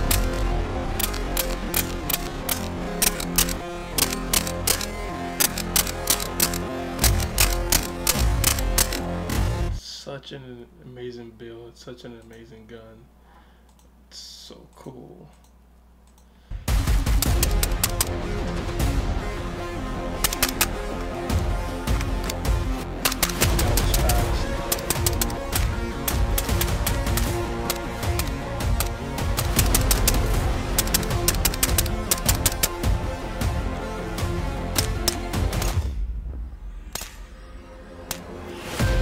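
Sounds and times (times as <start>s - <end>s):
background music: 0.0s - 9.8s, 16.5s - 39.0s.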